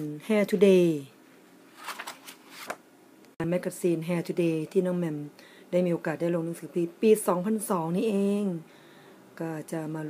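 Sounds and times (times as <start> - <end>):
magazine paper rustling: 1.7 - 2.8.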